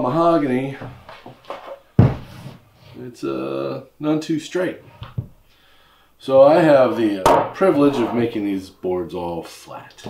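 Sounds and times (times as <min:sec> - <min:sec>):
solid thump of wooden board: 0:02.0 - 0:02.3.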